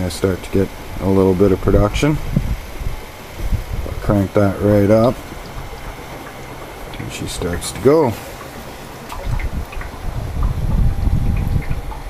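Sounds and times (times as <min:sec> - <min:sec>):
gas bubbling and fizzing: 0:00.0 - 0:12.0.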